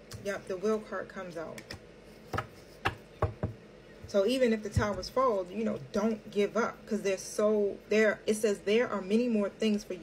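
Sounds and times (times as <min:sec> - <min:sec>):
card deck tapping on tabletop: 0:02.3 - 0:03.6.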